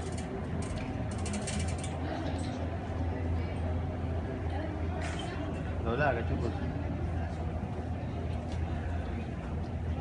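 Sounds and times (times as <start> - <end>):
luggage trolley rolling and rattling: 0.0 - 2.6
rapid clicks of trolley wheels: 0.0 - 2.6.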